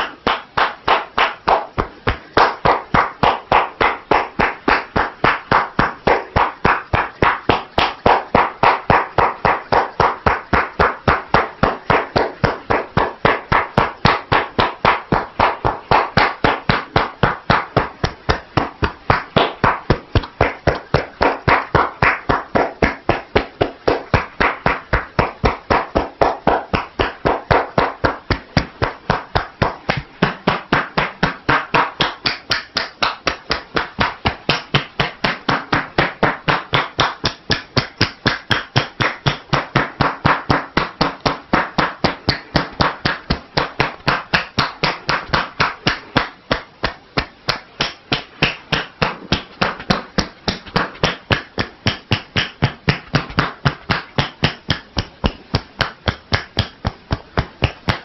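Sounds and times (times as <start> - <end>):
hands striking shoulders rhythmically: 0.0 - 58.0.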